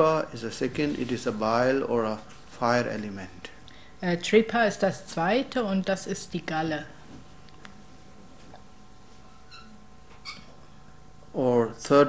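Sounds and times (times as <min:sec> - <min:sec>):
low room hum: 0:00.0 - 0:12.0
faint short squeak: 0:09.4 - 0:10.6.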